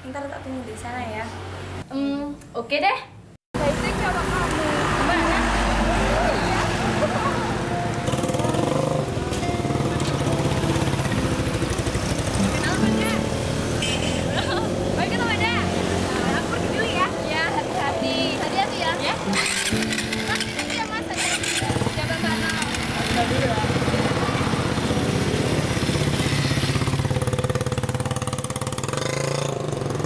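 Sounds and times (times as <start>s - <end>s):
women chattering and laughing: 3.6s - 8.8s, 14.1s - 19.4s
motorcycle engine running: 3.6s - 17.6s, 19.0s - 30.0s
background music: 3.6s - 30.0s.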